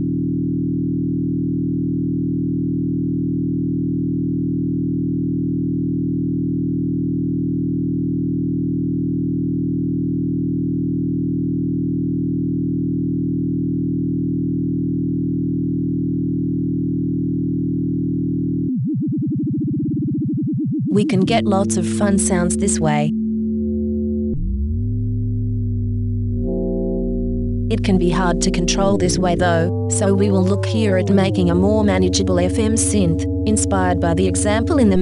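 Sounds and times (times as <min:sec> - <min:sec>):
steady low synth tone: 0:00.0 - 0:35.0.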